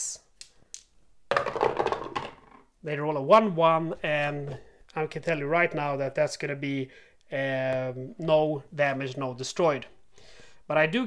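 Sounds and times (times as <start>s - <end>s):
dice clattering down a tower: 0.4s - 2.7s.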